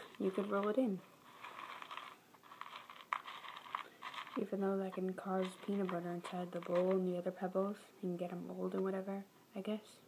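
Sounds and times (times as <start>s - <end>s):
dry food pebbles rattling in tub: 0.0s - 7.4s.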